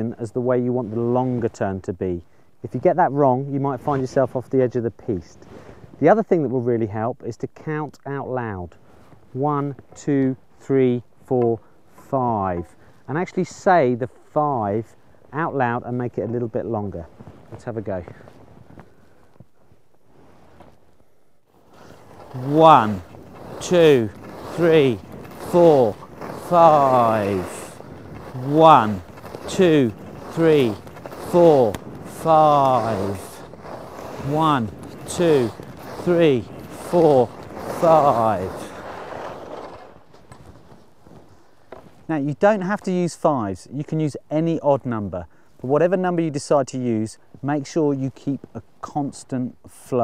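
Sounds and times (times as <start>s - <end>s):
skis scuffing on packed snow: 0.0s - 6.4s, 8.5s - 49.4s
faint microphone rustle: 0.0s - 50.0s.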